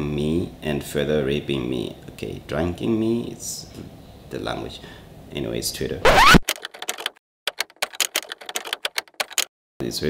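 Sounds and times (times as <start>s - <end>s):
typewriter key clacks: 6.4s - 9.5s.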